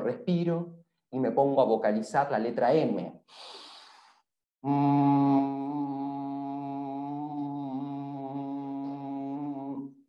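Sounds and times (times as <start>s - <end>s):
man humming: 4.6s - 10.0s.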